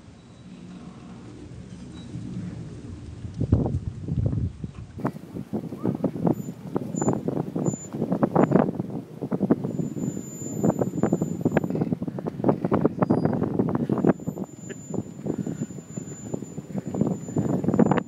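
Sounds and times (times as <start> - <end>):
low engine hum: 0.0 - 18.0.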